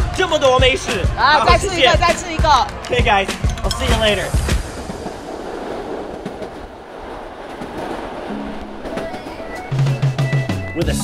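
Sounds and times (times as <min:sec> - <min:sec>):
train rumbling along track: 0:04.0 - 0:10.8.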